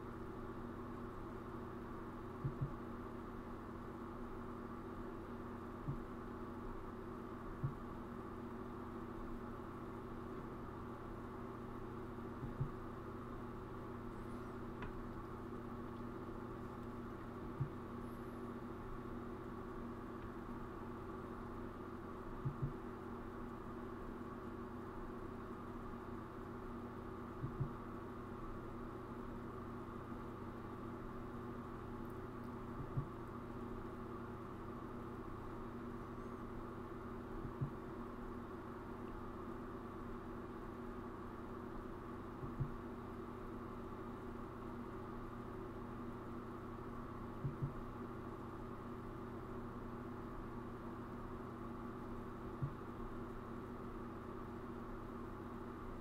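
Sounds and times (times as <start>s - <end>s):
low electrical hum: 0.0s - 56.0s
soft low thump: 2.4s - 2.8s, 5.9s - 6.1s, 12.4s - 12.8s, 22.4s - 22.8s, 27.4s - 27.8s, 32.8s - 33.2s, 42.4s - 42.8s, 47.4s - 47.8s.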